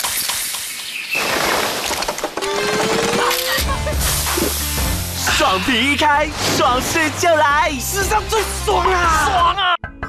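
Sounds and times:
music: 0:03.1 - 0:10.0
hiss of spraying fizz: 0:03.8 - 0:05.2.

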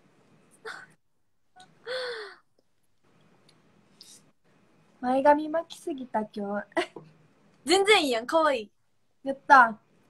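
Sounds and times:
woman's breathy gasp: 0:01.8 - 0:02.5.

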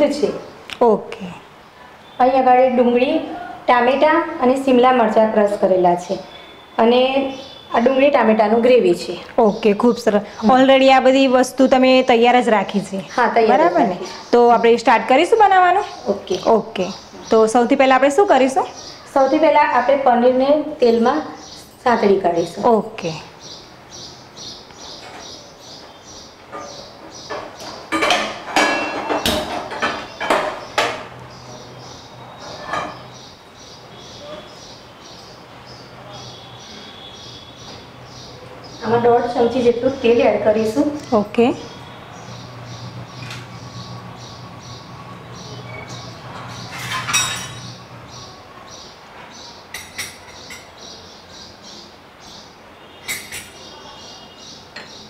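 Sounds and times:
faint high chirp: 0:06.2 - 0:08.1
metal cookware clanking: 0:26.5 - 0:31.0, 0:32.5 - 0:33.2, 0:46.4 - 0:47.8
utensils clinking on bowls: 0:26.5 - 0:31.0, 0:32.5 - 0:33.2, 0:46.4 - 0:47.8.

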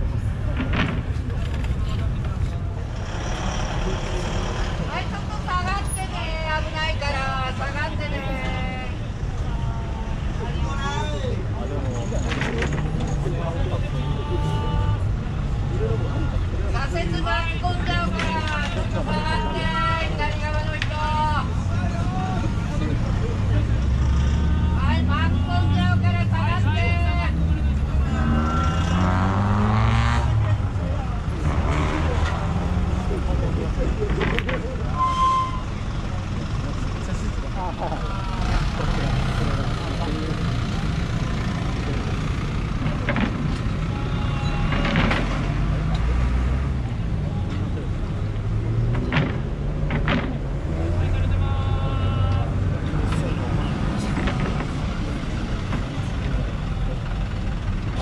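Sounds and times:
crowd chatter: 0:00.0 - 0:58.0
vehicle engines pulling away: 0:00.2 - 0:06.0, 0:22.4 - 0:26.7, 0:27.3 - 0:58.0
engine revving up: 0:28.0 - 0:30.6, 0:31.4 - 0:33.4.

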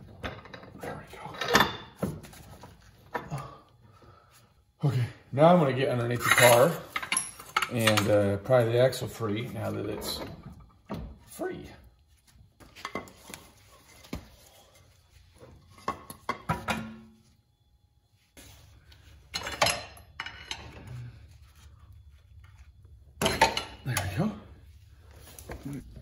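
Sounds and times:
metal clanks and clinks: 0:00.0 - 0:02.0, 0:06.2 - 0:08.7, 0:19.3 - 0:21.0, 0:23.2 - 0:24.2.

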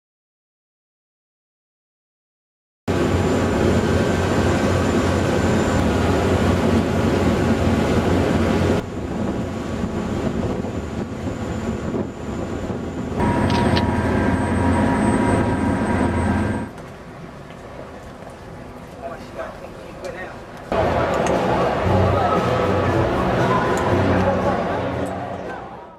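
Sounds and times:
boat engine low rumble: 0:02.9 - 0:25.4.

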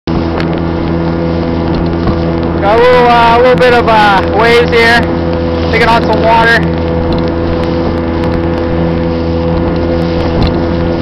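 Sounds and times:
motorboat engine running: 0:00.1 - 0:11.0
rushing water: 0:00.1 - 0:11.0
wind noise: 0:00.1 - 0:11.0.

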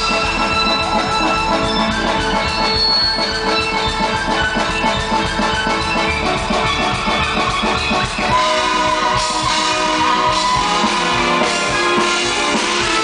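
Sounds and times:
live band music: 0:00.0 - 0:13.0
violin lead: 0:00.0 - 0:13.0.

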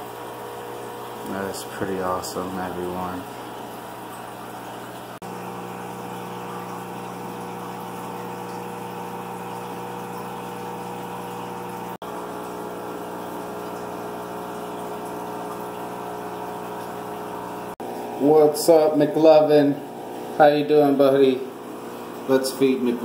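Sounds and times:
air pump humming: 0:00.0 - 0:23.0
water bubbling: 0:00.4 - 0:18.2.

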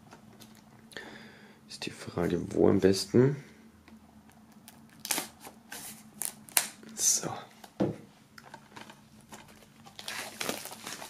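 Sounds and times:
plastic shrink-wrap crackling: 0:08.7 - 0:11.0.

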